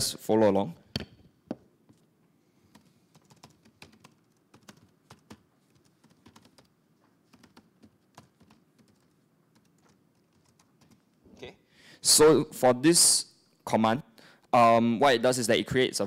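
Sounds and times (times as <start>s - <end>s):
keyboard typing: 2.7s - 11.2s.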